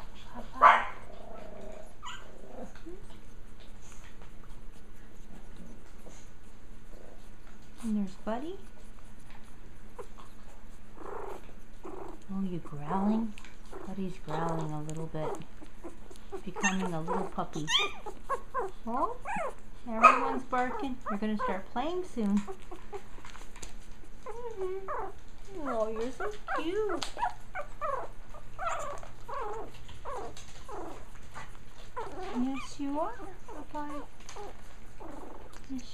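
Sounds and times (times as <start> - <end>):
low background hum: 0.0 - 35.9
puppy squeaking: 0.2 - 3.1, 9.3 - 35.9.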